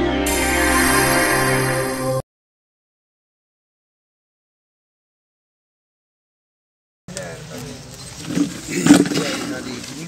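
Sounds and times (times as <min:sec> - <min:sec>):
people talking: 0:07.1 - 0:10.0.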